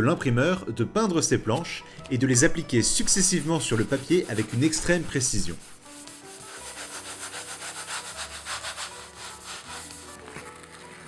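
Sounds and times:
baren rubbing on paper: 3.1 - 11.0.

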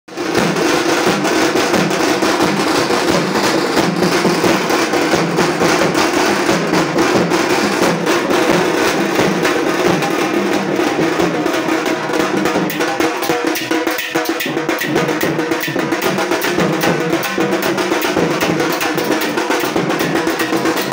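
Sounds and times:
barrel drum: 0.1 - 20.9
drum struck with sticks: 0.1 - 20.9.

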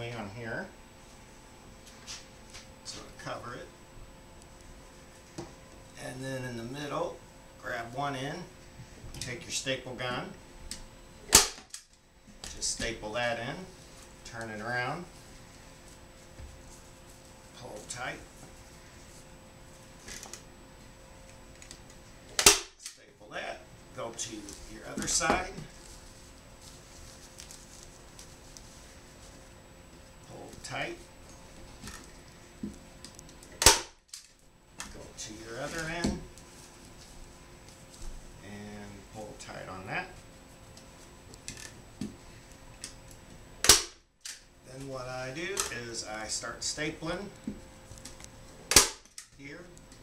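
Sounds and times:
curtain fabric rustling: 24.5 - 29.6.

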